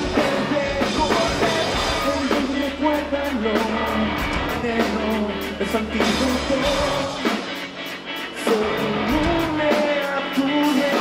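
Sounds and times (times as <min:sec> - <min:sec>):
man singing: 0:00.0 - 0:07.5, 0:08.3 - 0:11.0
drum kit with cymbals: 0:00.0 - 0:11.0
electric guitar: 0:00.0 - 0:11.0.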